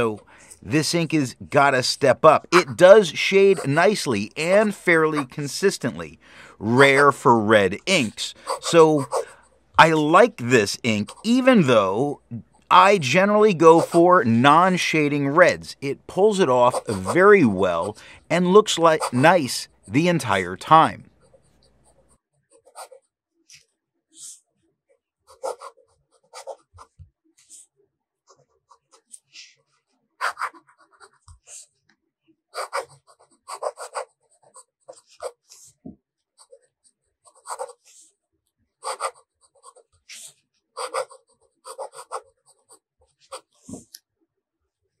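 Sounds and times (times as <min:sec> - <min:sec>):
fountain pen scratching on paper: 0:02.5 - 0:05.7, 0:08.0 - 0:09.5, 0:16.7 - 0:18.0, 0:18.6 - 0:19.9, 0:20.8 - 0:23.6, 0:25.3 - 0:27.7, 0:28.3 - 0:31.7, 0:32.6 - 0:38.2, 0:38.8 - 0:43.9.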